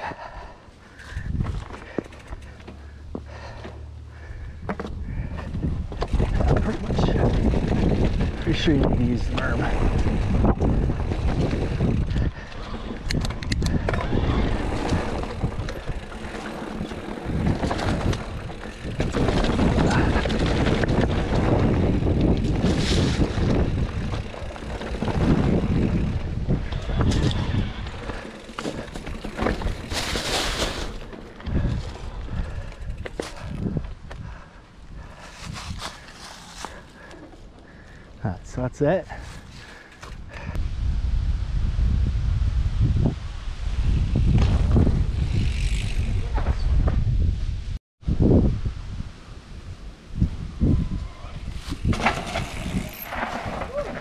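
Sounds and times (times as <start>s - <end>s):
bike rattling over bumps: 0.3s - 40.6s, 43.8s - 47.3s, 50.8s - 54.0s
wind rushing over microphone: 1.1s - 1.7s, 4.4s - 36.1s, 39.4s - 54.0s
tyres rolling over dirt and leaves: 4.6s - 13.1s, 13.8s - 33.7s, 35.0s - 38.0s, 51.4s - 54.0s.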